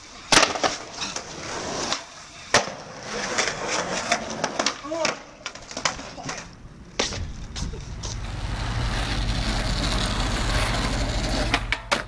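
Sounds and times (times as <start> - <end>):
skateboard clacks: 0.3 - 12.0.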